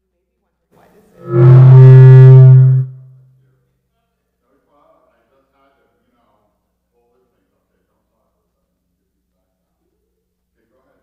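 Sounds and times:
loud low musical note: 0:01.2 - 0:03.2.

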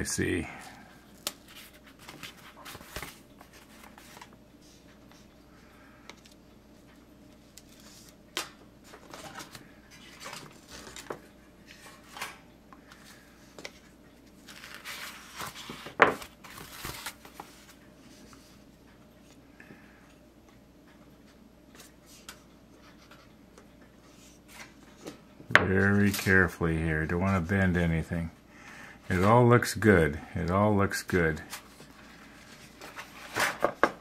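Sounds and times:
paper rustling: 0:01.1 - 0:04.4, 0:08.8 - 0:11.9, 0:14.4 - 0:18.3.

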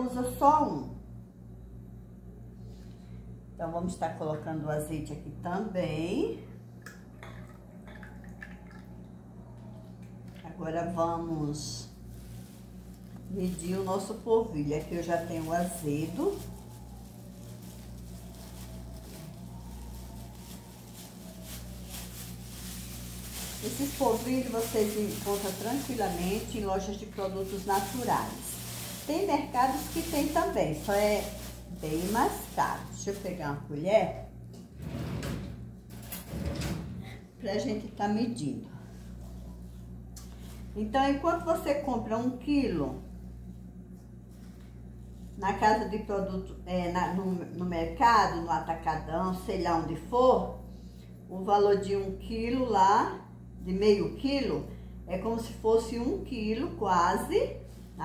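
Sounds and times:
light drips and ticks: 0:06.8 - 0:08.9.

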